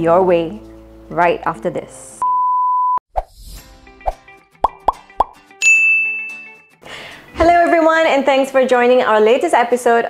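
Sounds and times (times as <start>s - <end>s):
light music: 0.0s - 2.2s, 3.4s - 10.0s
bright ringing ding: 5.6s - 6.6s.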